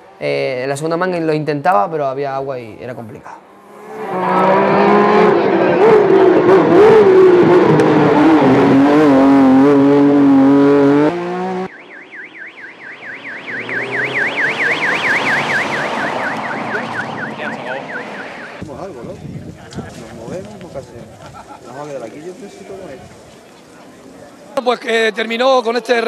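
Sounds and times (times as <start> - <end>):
race car engine at high revs: 3.4 - 11.8, 13.1 - 18.6
fast warbling siren: 11.6 - 18.6.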